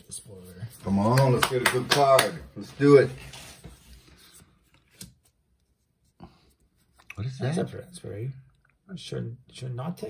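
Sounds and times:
trading cards handled: 0:03.2 - 0:05.4.

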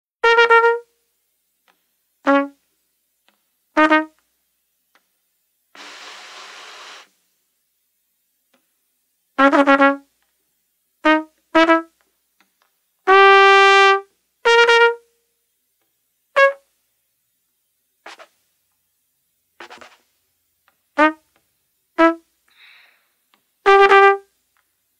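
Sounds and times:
trumpet playing short notes: 0:00.2 - 0:00.9, 0:02.2 - 0:02.6, 0:03.8 - 0:04.2, 0:09.4 - 0:10.1, 0:11.0 - 0:12.0, 0:13.1 - 0:15.1, 0:16.4 - 0:16.6, 0:21.0 - 0:21.3, 0:22.0 - 0:22.3, 0:23.6 - 0:24.3
breathy rush of air through trumpet: 0:05.8 - 0:07.2, 0:22.0 - 0:23.8.

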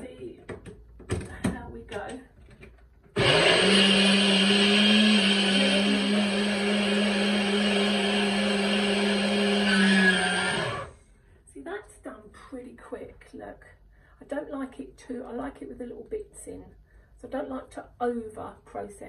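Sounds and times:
blender motor humming: 0:03.2 - 0:11.0.

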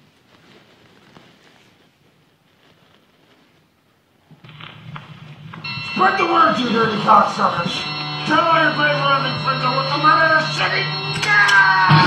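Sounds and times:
low hum: 0:04.5 - 0:12.0
steady high tones: 0:05.6 - 0:12.0.

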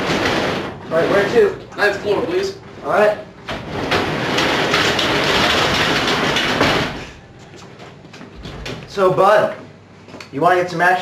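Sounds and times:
elevator running: 0:00.0 - 0:09.6
elevator clicks and rattles: 0:03.4 - 0:09.0.

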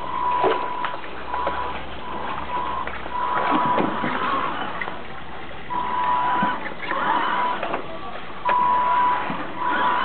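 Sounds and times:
electric motor and gears whining: 0:00.1 - 0:05.1, 0:05.7 - 0:10.0.

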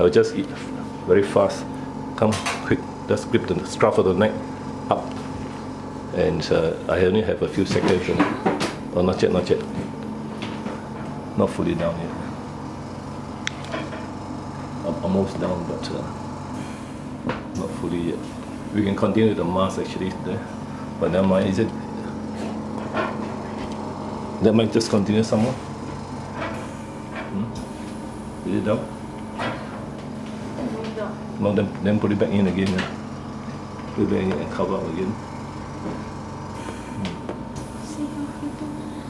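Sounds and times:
equipment humming: 0:00.0 - 0:39.0.

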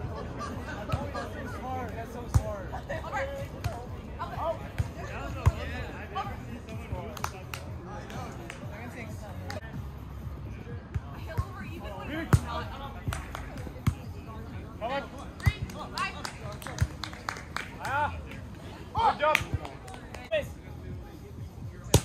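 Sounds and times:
music: 0:00.0 - 0:22.0
players' voices: 0:00.0 - 0:22.0.

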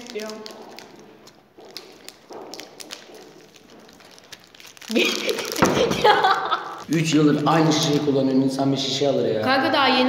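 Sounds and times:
plastic wrappers crackling: 0:00.0 - 0:09.6.

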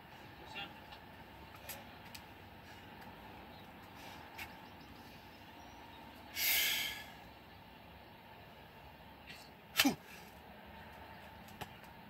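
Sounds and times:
man exhaling forcefully: 0:06.4 - 0:07.2.

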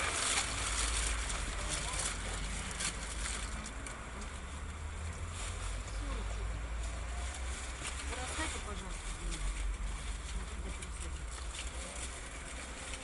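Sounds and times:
engine and road rumble: 0:00.0 - 0:13.0.

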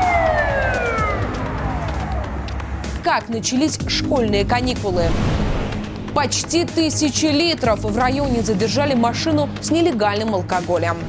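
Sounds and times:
siren wail falling in pitch: 0:00.0 - 0:03.0
low music bed: 0:00.0 - 0:11.0.

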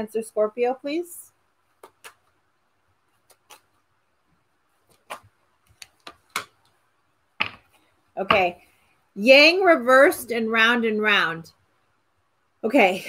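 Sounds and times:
cards being shuffled: 0:01.7 - 0:02.4, 0:03.0 - 0:04.0, 0:04.7 - 0:06.8.

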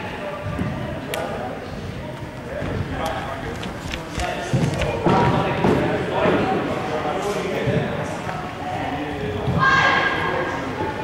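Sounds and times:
indistinct echoing voices: 0:00.0 - 0:11.0.

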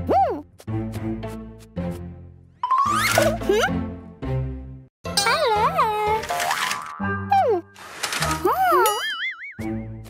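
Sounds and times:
bouncy children's music: 0:05.1 - 0:10.0.

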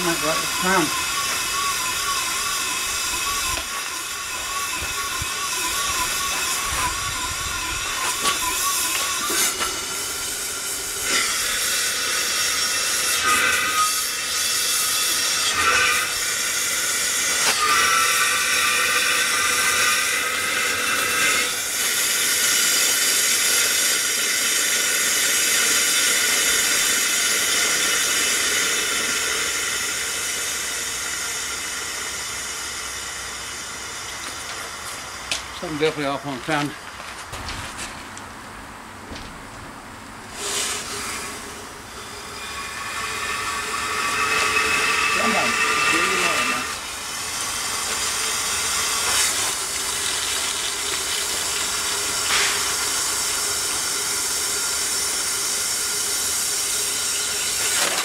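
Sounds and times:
wavering whistle-like tone: 0:00.0 - 0:11.2, 0:40.4 - 0:46.8
steam hissing: 0:00.0 - 0:36.6, 0:40.3 - 0:58.0.

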